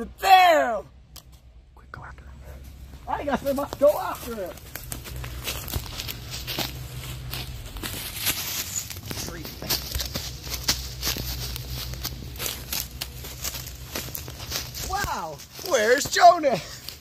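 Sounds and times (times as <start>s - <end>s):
steady low rumble: 0.8s - 16.0s
running footsteps crunching leaves: 2.6s - 17.0s.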